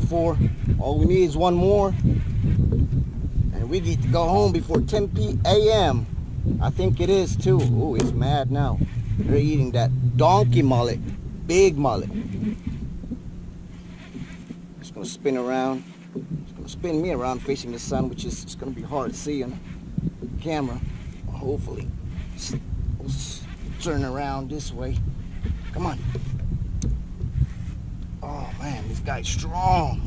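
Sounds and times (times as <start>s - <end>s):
wind buffeting microphone: 0.0s - 30.0s.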